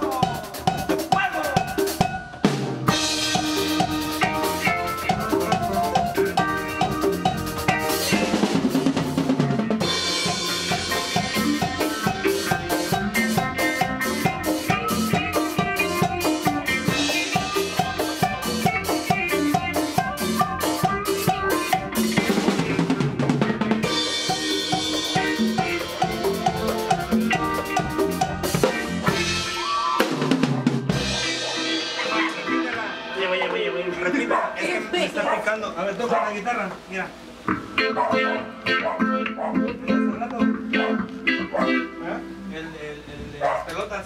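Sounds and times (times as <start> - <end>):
electric bass: 0.0 - 34.1, 37.2 - 44.0
electric guitar: 0.0 - 35.0, 36.7 - 43.9
drum kit and hand drums: 0.0 - 35.2, 36.8 - 42.5
keyboards: 0.0 - 44.0.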